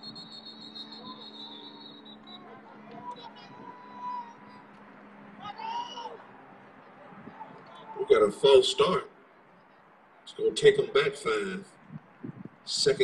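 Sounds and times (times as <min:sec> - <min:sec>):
referee's whistle blast: 0:00.0 - 0:03.3
person shouting: 0:05.4 - 0:06.2.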